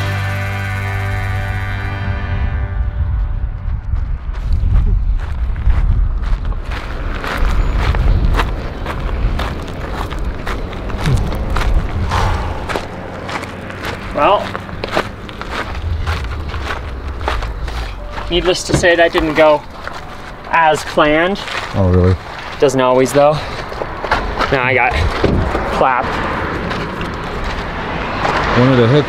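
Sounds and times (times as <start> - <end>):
low rumble: 0.0 - 22.3
running footsteps on pavement: 3.1 - 28.6.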